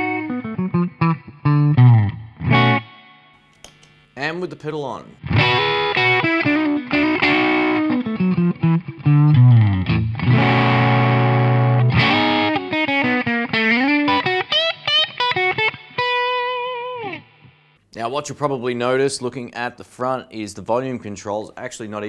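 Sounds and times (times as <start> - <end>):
electric guitar lead phrases: 0.0 - 3.4, 5.2 - 17.8.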